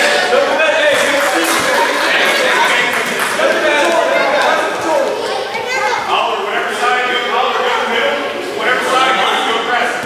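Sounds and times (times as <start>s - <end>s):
children calling out and chattering: 0.0s - 9.8s.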